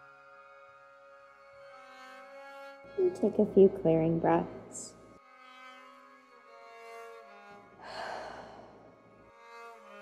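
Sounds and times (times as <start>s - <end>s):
soft background music: 0.1s - 5.4s.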